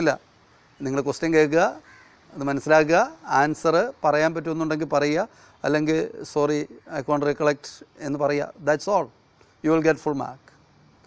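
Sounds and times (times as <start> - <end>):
man speaking: 0.0 - 10.6.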